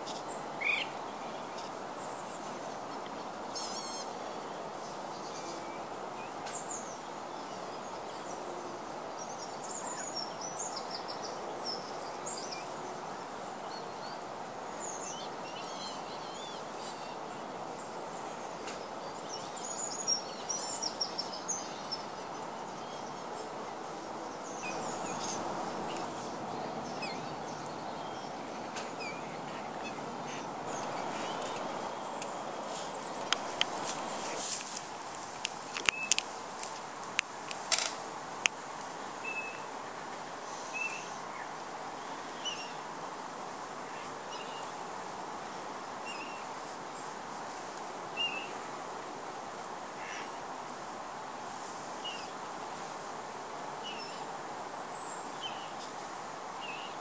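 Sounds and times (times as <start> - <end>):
small bird calls and chirps: 0.0 - 36.3, 39.2 - 43.1, 43.8 - 48.8, 51.4 - 52.4, 53.7 - 57.0.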